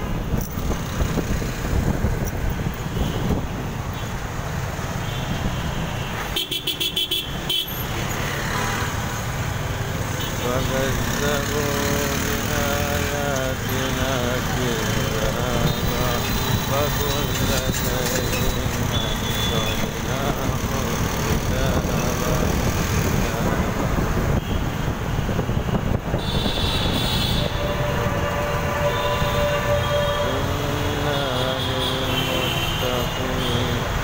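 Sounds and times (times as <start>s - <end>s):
traffic engines rumbling: 0.0s - 34.0s.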